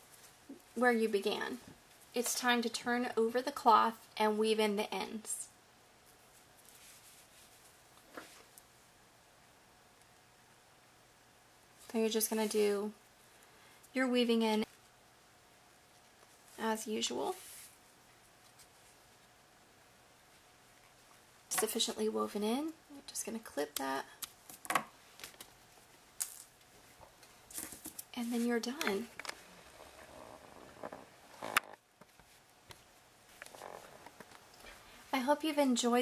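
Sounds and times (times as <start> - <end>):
faint cloth rustling: 6.0 - 8.6, 15.9 - 19.4.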